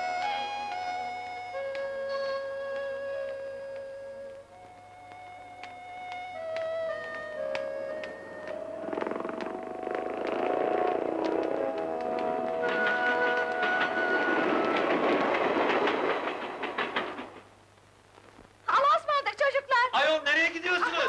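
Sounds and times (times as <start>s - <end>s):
steam train whistle: 10.5s - 15.2s
steam train rail clatter: 10.9s - 17.6s.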